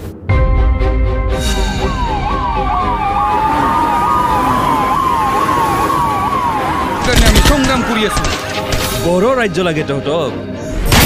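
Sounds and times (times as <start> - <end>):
emergency vehicle siren: 1.4 - 8.5.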